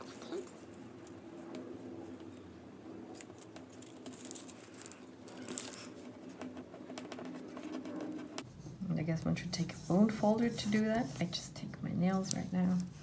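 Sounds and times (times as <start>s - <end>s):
tape and paper rustling: 3.1s - 7.9s, 12.1s - 13.0s.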